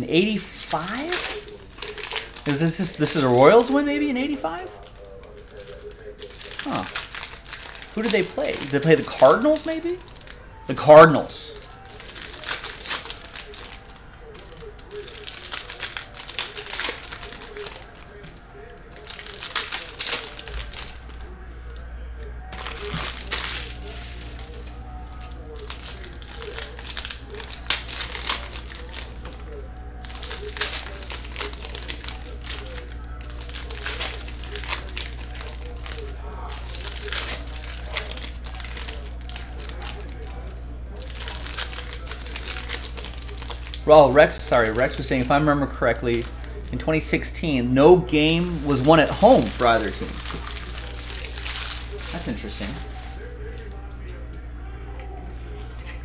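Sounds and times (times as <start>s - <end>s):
foil packs crinkling: 0.0s - 56.0s
steady low hum: 0.0s - 56.0s
cards being handled: 0.2s - 56.0s.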